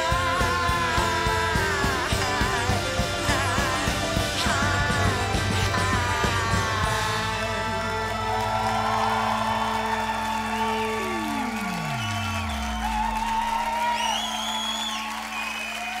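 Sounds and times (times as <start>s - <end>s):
live band sustained chord: 0.0s - 12.9s
audience applauding: 0.0s - 16.0s.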